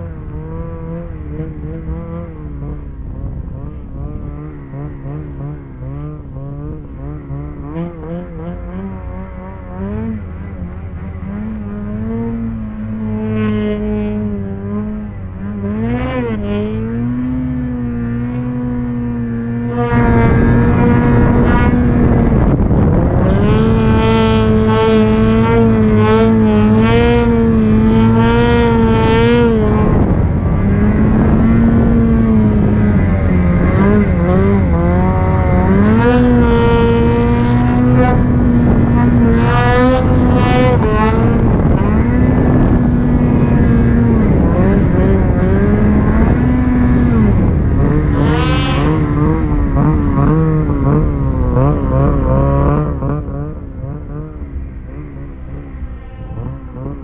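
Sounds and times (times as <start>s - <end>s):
snowmobile engine revving: 0.0s - 57.0s.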